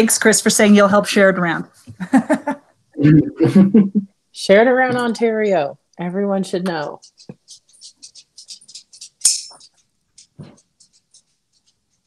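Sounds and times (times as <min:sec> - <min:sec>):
faint scratchy rustling: 0:06.6 - 0:12.0.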